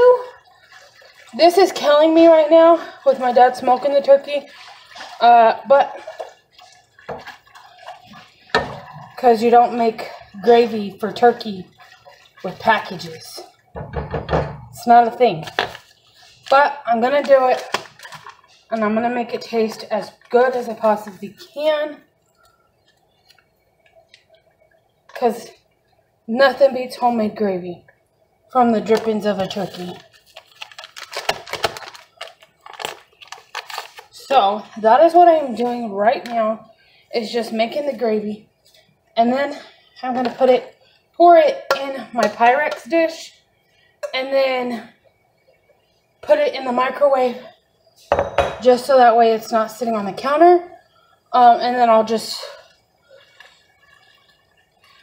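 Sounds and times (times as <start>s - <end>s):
broth sloshing in pot: 0.0s - 55.0s
paper packets crinkling: 28.9s - 34.3s.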